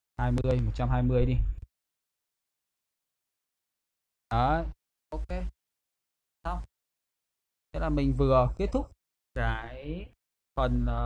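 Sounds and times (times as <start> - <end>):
man talking: 0.2 - 1.6, 4.3 - 4.8, 7.8 - 9.8, 10.6 - 11.0.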